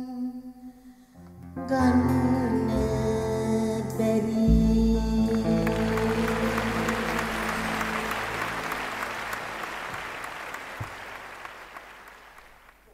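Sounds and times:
band's held chord: 4.5 - 11.4
audience applauding: 5.4 - 12.9.

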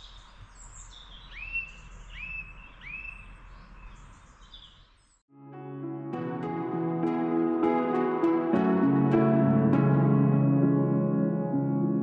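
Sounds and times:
birds chirping faintly: 0.0 - 5.2.

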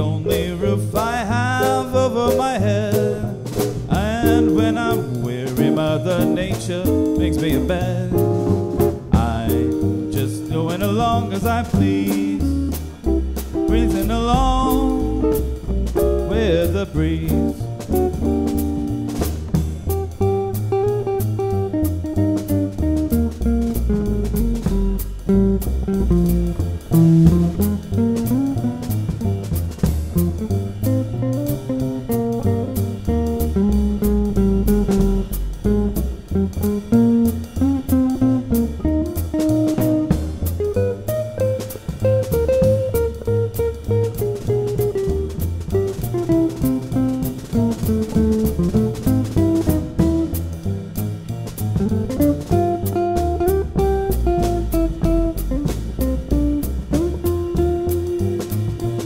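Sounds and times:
drum kit cymbals: 0.0 - 59.0
plucked double bass: 0.0 - 59.0.

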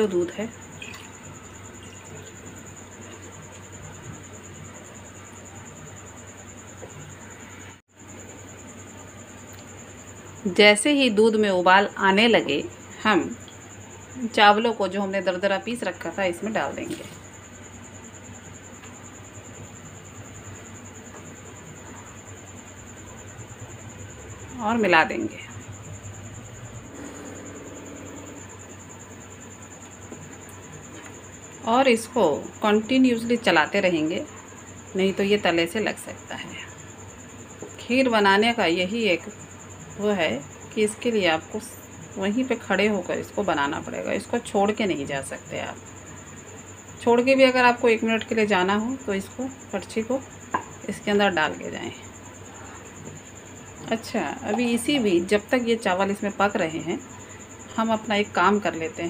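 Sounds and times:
milk and rice simmering: 0.5 - 5.8
low hum: 23.5 - 30.7
high-pitched whine: 25.2 - 30.0.

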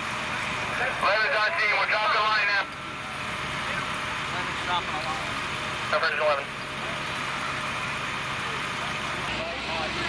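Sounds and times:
deep engine rumble: 0.0 - 10.0
diesel engine running: 0.0 - 10.0
street noise: 0.0 - 10.0.

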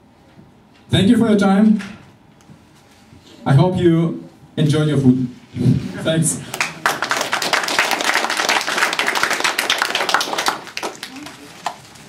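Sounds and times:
audience applauding: 6.5 - 12.0.

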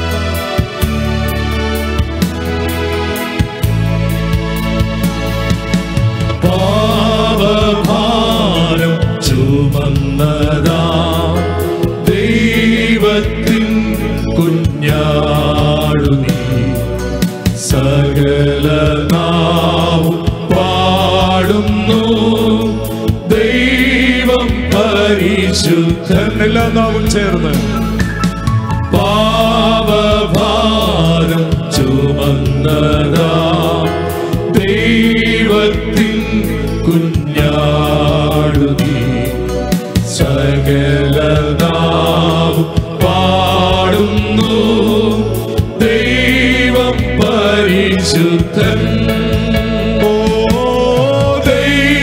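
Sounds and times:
instrumental backing with steady beat: 0.0 - 52.0
male group singing worship song: 6.2 - 52.0.

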